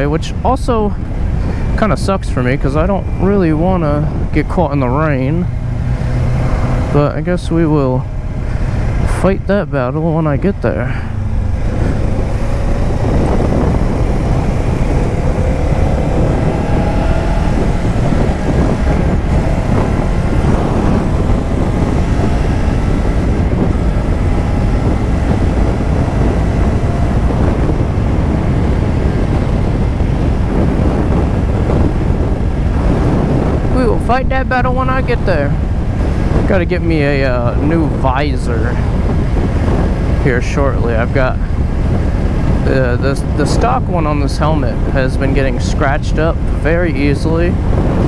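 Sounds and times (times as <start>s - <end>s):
motorcycle engine accelerating: 0.0s - 48.0s
wind rushing on microphone: 0.0s - 48.0s.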